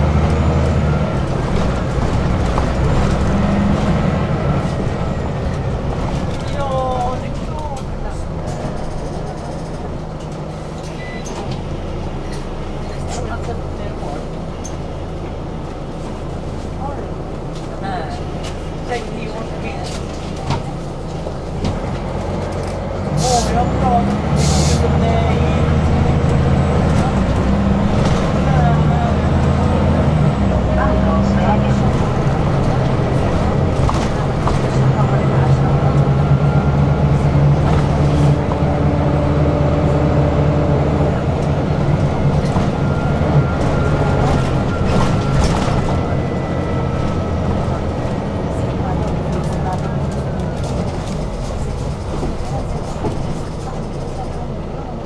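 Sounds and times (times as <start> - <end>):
bus engine humming: 0.0 - 55.0
air brakes hissing: 24.3 - 24.9.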